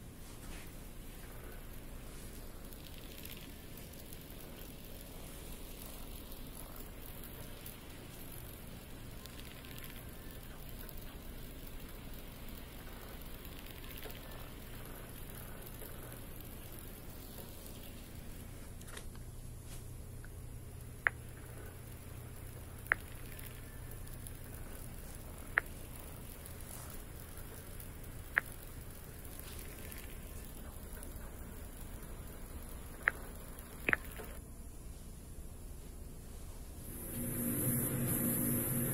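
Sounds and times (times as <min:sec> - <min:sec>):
room tone hiss: 0:00.0 - 0:38.9
faint clicks: 0:01.1 - 0:19.3, 0:20.2 - 0:34.5.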